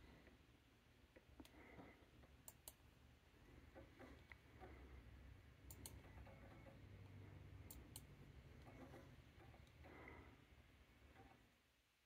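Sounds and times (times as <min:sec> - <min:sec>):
faint low hum: 0:00.0 - 0:12.0
computer mouse clicking: 0:02.2 - 0:02.8, 0:05.6 - 0:06.8, 0:07.6 - 0:09.9.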